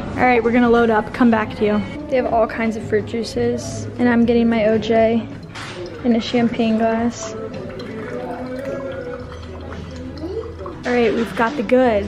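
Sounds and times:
background music: 0.0 - 12.0
juice pouring into glass: 5.3 - 11.4.

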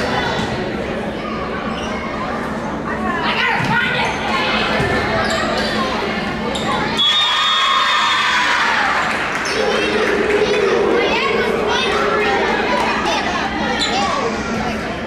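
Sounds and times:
referee's whistle: 7.0 - 7.6
people cheering: 7.0 - 14.5
players shouting: 7.5 - 14.3.

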